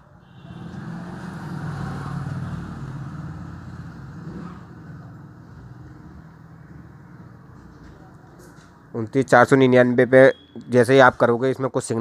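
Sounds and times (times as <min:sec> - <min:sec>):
passing vehicle engine rumble: 0:00.4 - 0:08.9.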